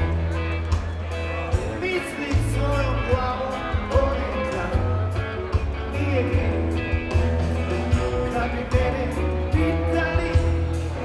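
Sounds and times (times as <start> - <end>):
live rock band playing: 0.0 - 11.0.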